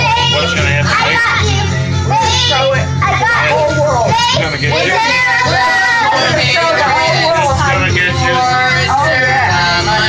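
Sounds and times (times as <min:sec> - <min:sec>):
karaoke backing music: 0:00.0 - 0:10.0
people singing into microphone: 0:04.4 - 0:10.0.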